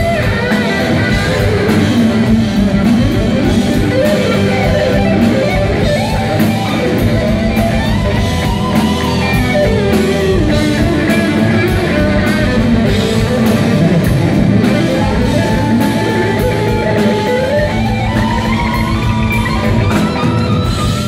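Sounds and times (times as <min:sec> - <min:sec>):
electric guitar lead line: 0:00.0 - 0:21.0
live rock band: 0:00.0 - 0:21.0
steady drums: 0:00.0 - 0:21.0.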